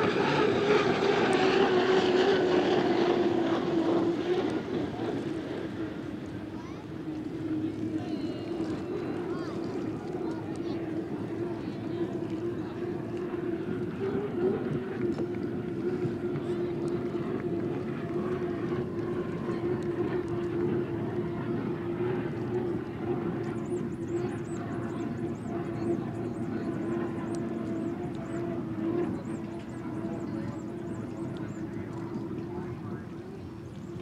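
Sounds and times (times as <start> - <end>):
racing boat engine drone: 0.0 - 34.0.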